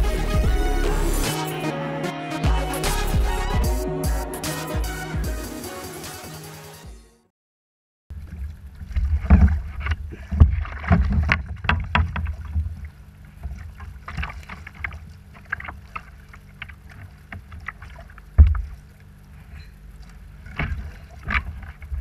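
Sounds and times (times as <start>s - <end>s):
steady low rumble: 0.0s - 5.8s.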